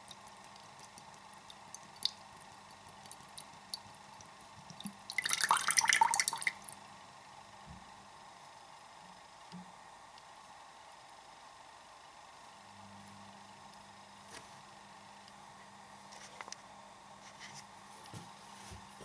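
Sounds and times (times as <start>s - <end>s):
water dripping into bowl: 0.0s - 6.8s
thin pouring stream: 4.7s - 6.8s.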